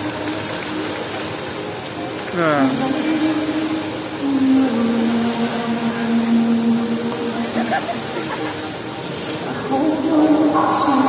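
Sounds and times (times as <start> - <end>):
fountain jets spraying: 0.0 - 11.0.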